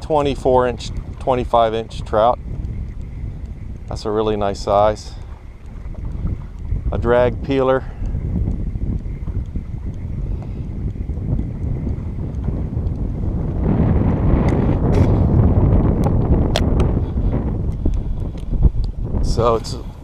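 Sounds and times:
wind buffeting microphone: 0.0 - 20.0
faint sharp clicks: 0.8 - 6.8, 7.4 - 13.1.

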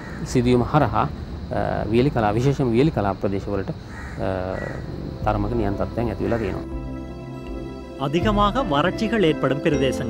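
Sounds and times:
crow cawing: 0.0 - 0.3, 3.8 - 5.1, 6.1 - 6.8
man narrating: 0.4 - 6.7, 8.0 - 10.0.

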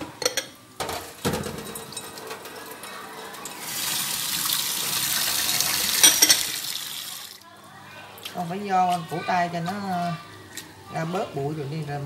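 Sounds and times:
tap water running into sink: 3.6 - 7.4.

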